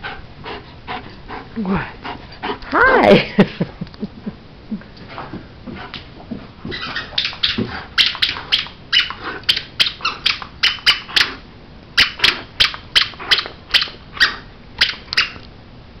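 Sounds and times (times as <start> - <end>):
squeaky toy squeaks: 6.7 - 11.3, 12.0 - 15.4.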